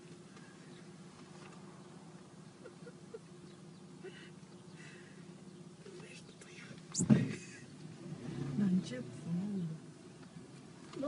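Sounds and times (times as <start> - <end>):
steady low hum: 0.0 - 11.0
people whispering: 5.8 - 7.7.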